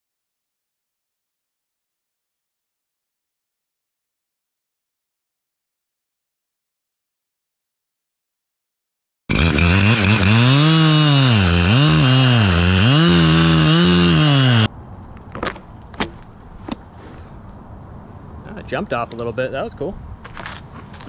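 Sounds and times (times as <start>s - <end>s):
chainsaw cutting wood: 9.3s - 14.7s.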